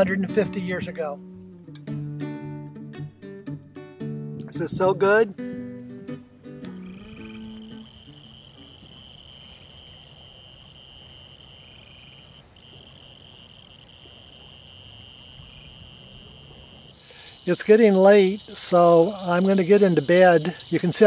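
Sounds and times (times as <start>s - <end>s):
guitar music: 0.0s - 9.6s
crickets chirping: 4.6s - 21.0s
frogs calling: 5.6s - 21.0s.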